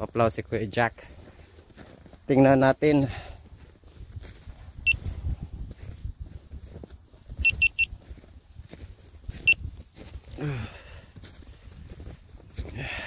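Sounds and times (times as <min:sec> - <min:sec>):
short high-pitched beeps: 0:07.4 - 0:08.0, 0:09.4 - 0:09.6.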